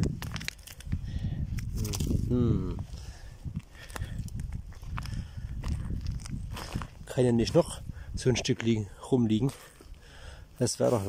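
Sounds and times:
gravel clicking and crunching: 0.0 - 11.0.

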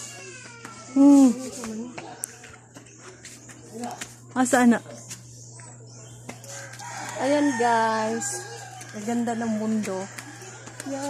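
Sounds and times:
rooster crowing: 6.4 - 11.0.

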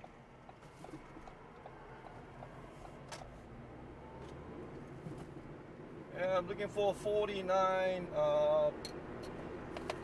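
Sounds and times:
car road and engine noise: 0.0 - 10.0.

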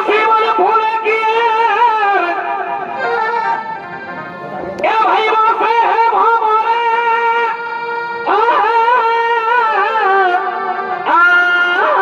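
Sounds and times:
shehnai melody over loudspeakers: 0.0 - 12.0.

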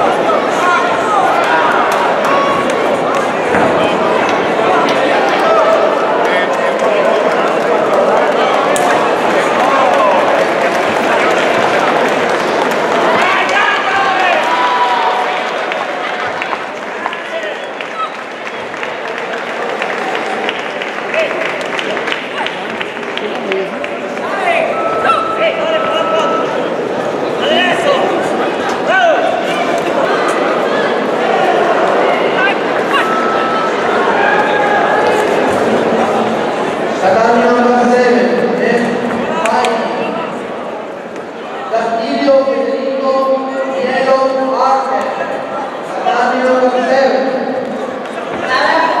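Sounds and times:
people shouting in a hall: 0.0 - 49.0
crowd shouting: 7.9 - 16.8, 24.2 - 37.8.

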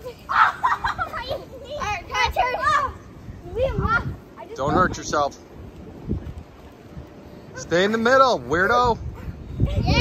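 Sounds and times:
children calling out in play: 0.0 - 4.8, 9.1 - 10.0.

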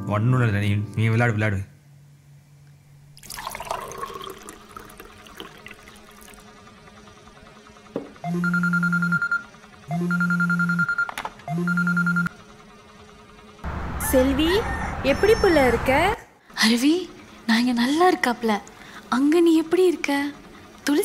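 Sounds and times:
phone vibrating on tiles: 8.2 - 12.3.

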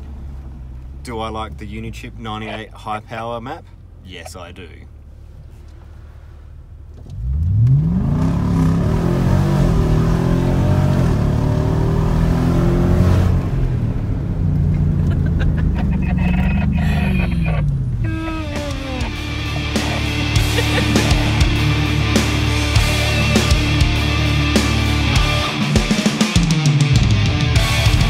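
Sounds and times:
car engine revving hard: 7.1 - 28.0.

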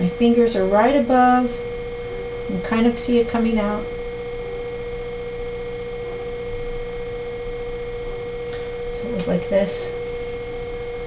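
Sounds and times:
potter's wheel humming: 0.0 - 11.0.

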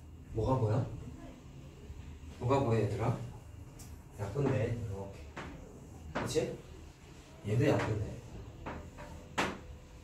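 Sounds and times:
chalk knocking on a chalkboard: 4.3 - 6.6, 7.6 - 10.0.

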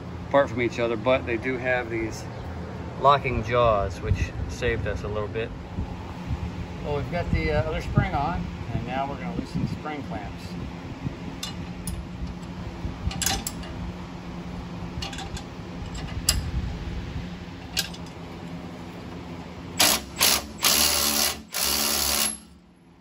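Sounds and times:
tools clicking on metal clamps: 13.1 - 13.7
power tool spinning screws: 19.8 - 22.5.

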